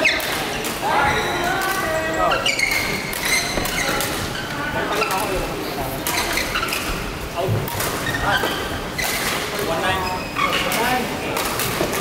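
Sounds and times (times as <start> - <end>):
shoes squeaking on court floor: 0.0 - 10.9.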